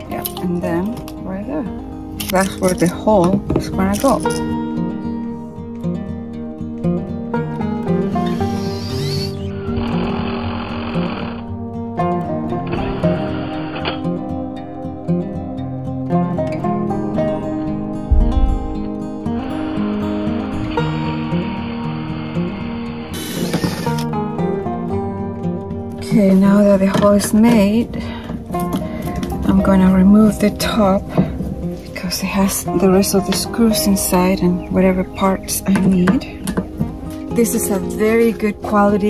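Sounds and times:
background music: 0.0 - 39.0
cordless drill cutting plastic: 8.0 - 11.5, 23.0 - 24.1.

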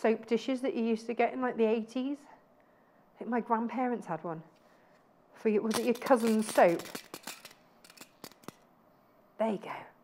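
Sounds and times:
metal pins clicking: 5.7 - 8.6.

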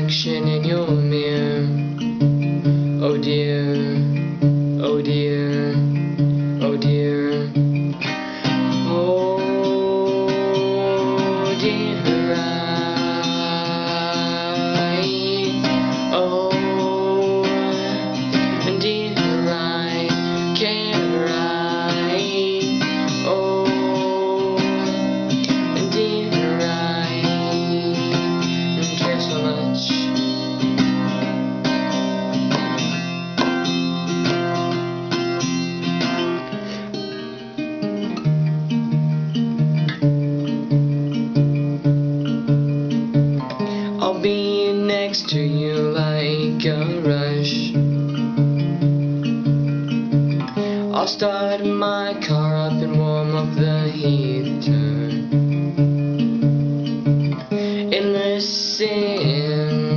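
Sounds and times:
acoustic guitar strummed: 0.0 - 59.9.

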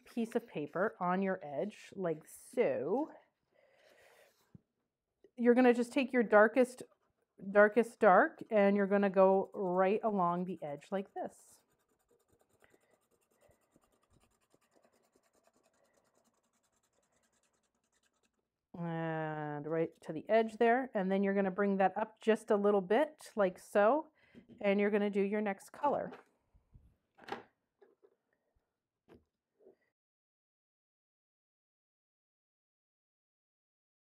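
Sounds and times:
marker scratching on paper: 7.8 - 18.4.

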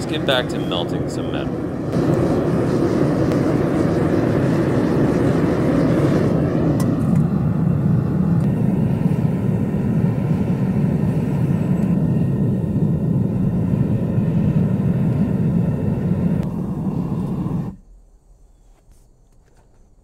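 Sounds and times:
gas burner rushing: 0.0 - 17.8.

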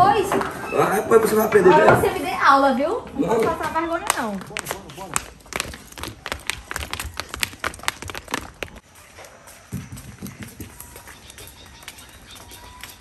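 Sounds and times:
footsteps on stone steps: 3.3 - 13.0.

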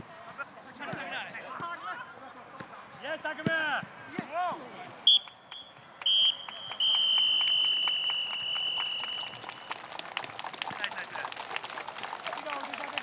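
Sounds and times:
referee whistle blowing: 5.1 - 9.7.

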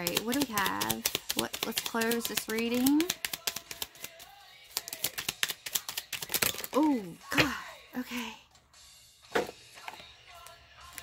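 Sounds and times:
cards being shuffled: 0.0 - 6.9
faint background music: 0.0 - 11.0.

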